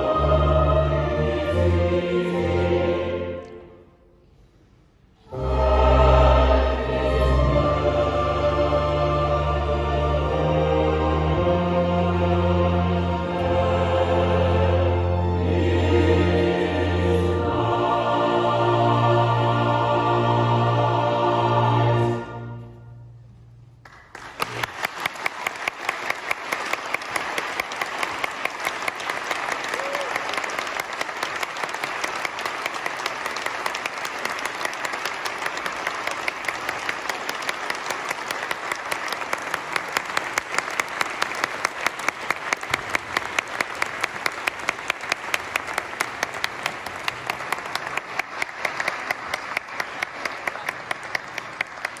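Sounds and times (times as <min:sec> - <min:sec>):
audience applauding: 0:23.8 - 0:52.0
close hands clapping in a beat: 0:23.8 - 0:52.0.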